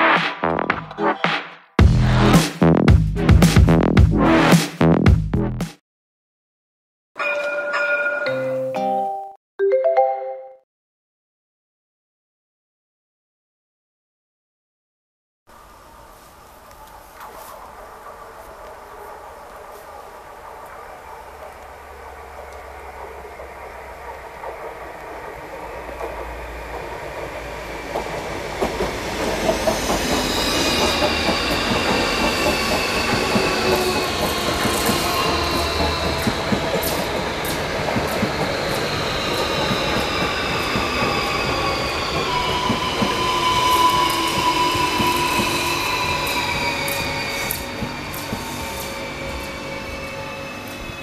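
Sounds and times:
wheels rumbling on rail: 15.5 - 51.0
electric train passing: 15.6 - 51.0.

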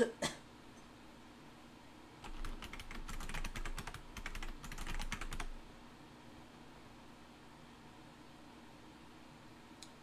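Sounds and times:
computer keyboard keys clicking: 2.2 - 5.6.

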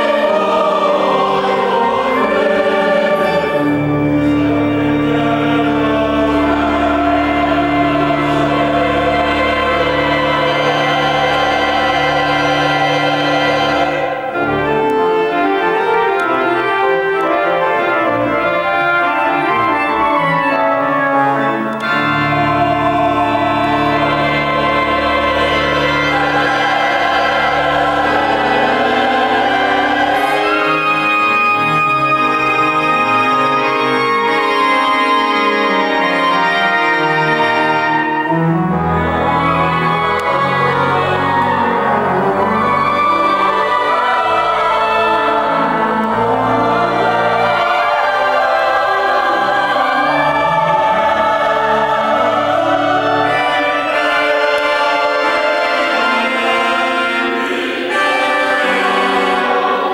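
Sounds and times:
mixed choir singing: 0.0 - 59.9
organ accompaniment: 0.0 - 59.9.

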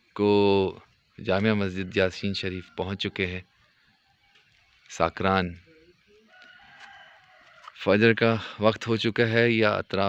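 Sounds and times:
rooster crowing: 1.6 - 3.5, 6.1 - 7.9.

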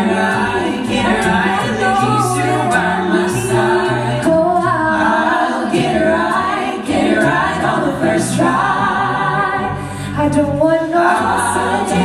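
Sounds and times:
sung bass line: 0.0 - 5.2
a cappella group singing: 0.0 - 12.0.

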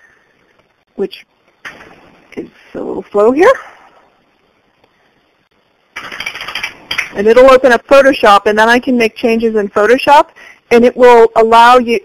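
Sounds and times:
rough crackly noise: 5.5 - 7.4.

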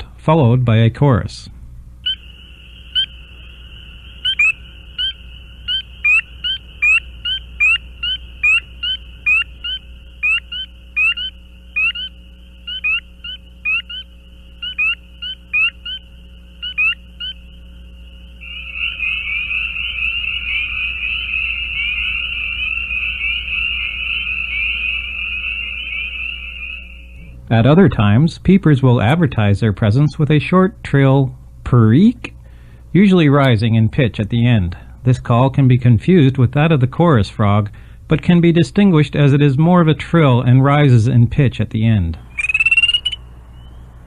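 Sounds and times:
spring peepers peeping: 2.0 - 31.3, 31.9 - 44.0
chorus of peepers: 2.0 - 44.0.

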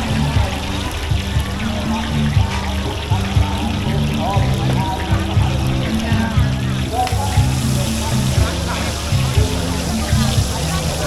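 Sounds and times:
crowd chatter: 0.0 - 11.0
music with bass line: 0.0 - 11.0
oil frying on griddle: 0.0 - 11.0.

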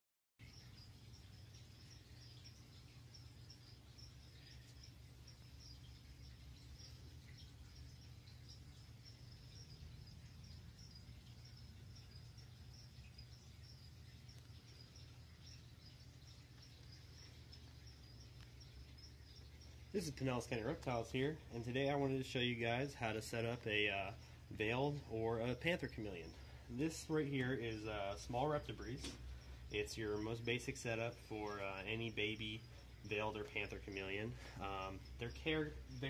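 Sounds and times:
cricket chirping: 0.4 - 36.0
low room hum: 0.4 - 36.0.

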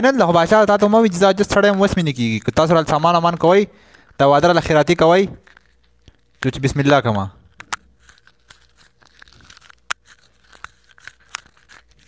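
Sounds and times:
rustling clicks and crackles: 0.0 - 4.8, 5.4 - 12.0.

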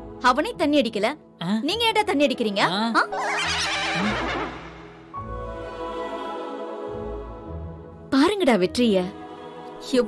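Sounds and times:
background music: 0.0 - 10.0
wavering voice swooping in pitch: 3.0 - 5.0.

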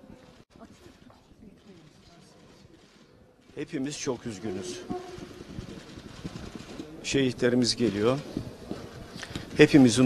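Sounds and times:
faint crowd murmur: 0.0 - 10.0.

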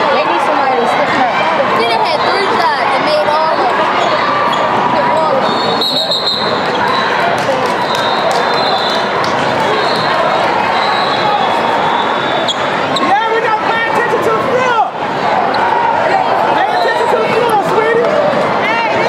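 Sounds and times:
crowd noise: 0.0 - 19.0
voices calling out: 0.0 - 19.0.

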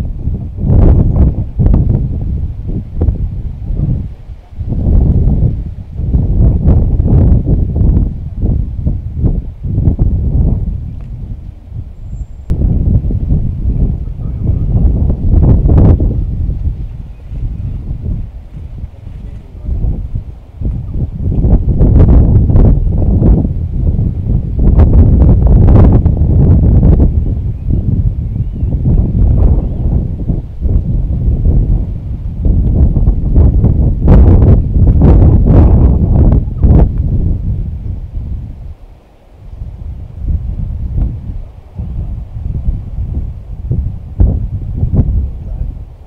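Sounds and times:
heavy wind buffeting microphone: 0.0 - 46.0.

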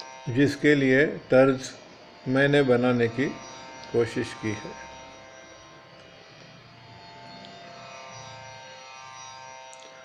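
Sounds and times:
faint musical drone: 0.0 - 10.0.

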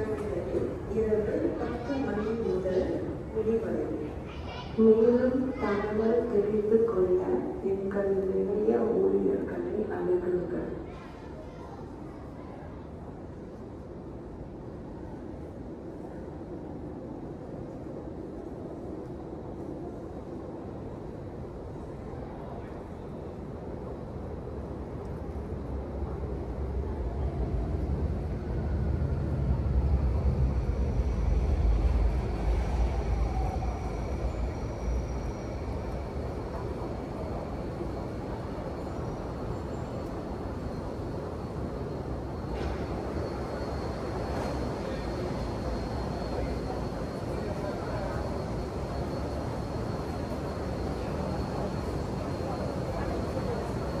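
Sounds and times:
deep train rumble: 0.0 - 54.0
passengers' voices: 0.0 - 54.0.

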